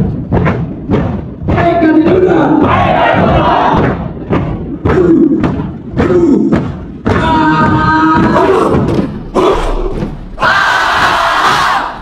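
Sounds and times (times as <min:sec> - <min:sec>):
group shouting a chant: 0:02.6 - 0:04.0, 0:07.1 - 0:12.0.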